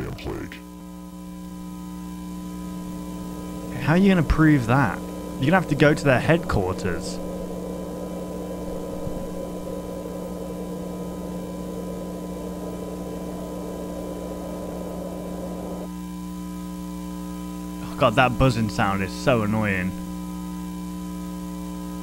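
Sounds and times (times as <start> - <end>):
electrical buzzing hum: 0.0 - 22.0.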